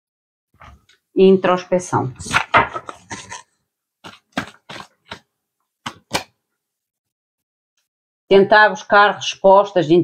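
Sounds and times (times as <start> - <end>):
cards shuffled by hand: 2.2 - 6.4.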